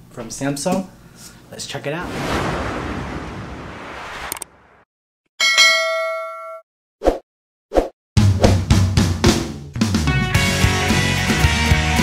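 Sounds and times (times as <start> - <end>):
whoosh: 2.0 - 4.9
bright bell ding: 5.4 - 6.6.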